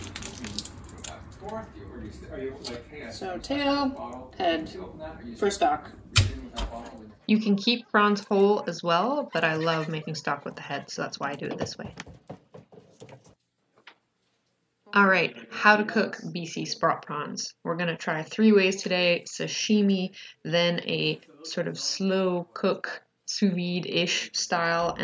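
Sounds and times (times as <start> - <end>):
prawn shells crackling: 0.0 - 1.6
wet squishing: 0.0 - 1.6.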